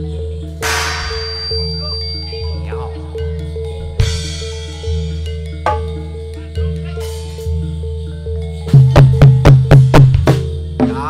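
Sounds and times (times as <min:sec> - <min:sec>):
gamelan music: 0:00.0 - 0:11.0
sharp cymbal crash: 0:00.6 - 0:02.4.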